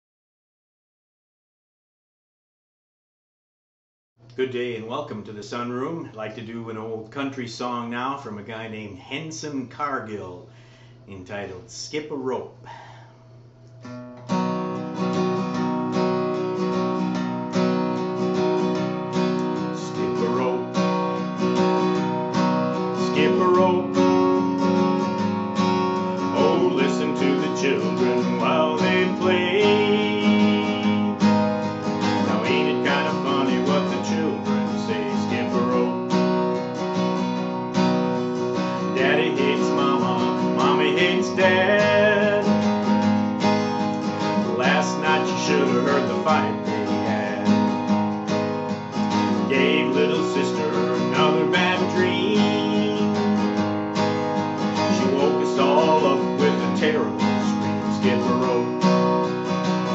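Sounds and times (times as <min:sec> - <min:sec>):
acoustic guitar strummed: 0:13.2 - 0:59.9
man singing: 0:19.7 - 0:20.9, 0:23.0 - 0:24.8, 0:26.2 - 0:31.4, 0:32.0 - 0:36.2, 0:38.8 - 0:43.0, 0:44.2 - 0:48.0, 0:49.3 - 0:53.6, 0:54.8 - 0:59.0.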